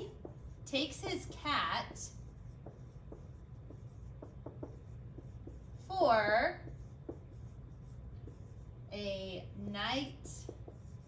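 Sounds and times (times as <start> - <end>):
marker squeaking on whiteboard: 0.0 - 8.8, 10.0 - 11.0.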